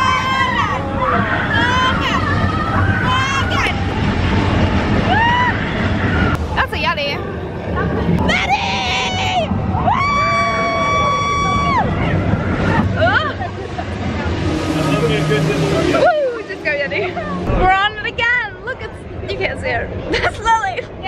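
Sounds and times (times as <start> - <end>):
roller coaster train rumbling: 0.0 - 21.0.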